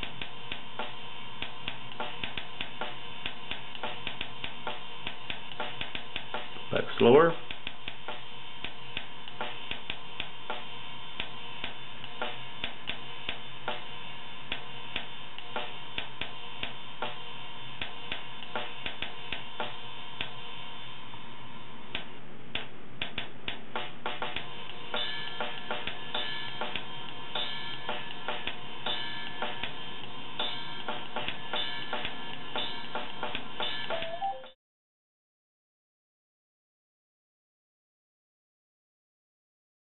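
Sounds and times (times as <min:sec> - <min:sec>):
drum kit loop: 0:00.8 - 0:08.3, 0:23.0 - 0:29.8, 0:30.4 - 0:34.6.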